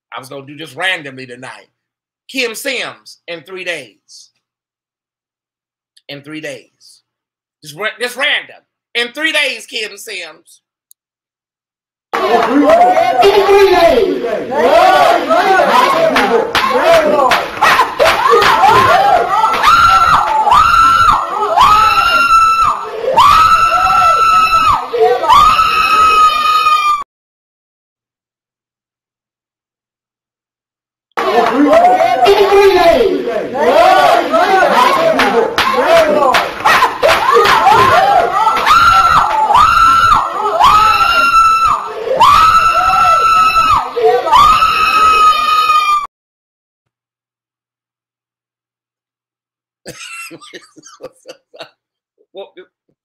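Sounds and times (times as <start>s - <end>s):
woman screaming into a microphone: 18.2s - 27.0s, 38.7s - 46.1s.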